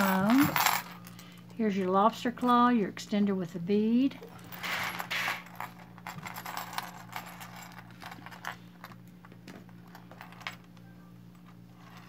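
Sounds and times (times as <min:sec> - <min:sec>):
metal chains clinking: 0:00.0 - 0:02.6, 0:04.2 - 0:09.0, 0:09.7 - 0:10.7, 0:11.4 - 0:12.0.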